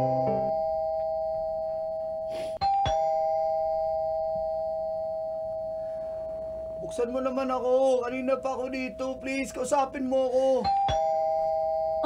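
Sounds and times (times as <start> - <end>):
two-note doorbell ding-dong: 0.0 - 1.6, 2.6 - 4.2.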